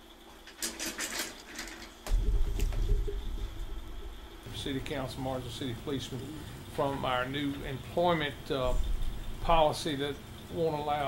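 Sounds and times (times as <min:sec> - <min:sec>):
microphone handling rumble: 0:02.1 - 0:04.5.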